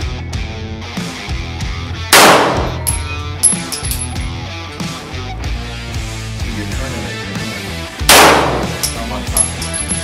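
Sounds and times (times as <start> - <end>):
rock music with guitars: 0.0 - 10.0
pistol shot with echo: 2.2 - 3.0, 8.1 - 8.9
high metallic ringing: 2.7 - 4.4.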